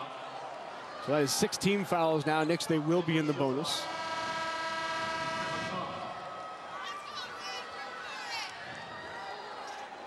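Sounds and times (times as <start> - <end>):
crowd noise and voices: 0.0 - 10.0
arena horn blast: 3.6 - 6.3.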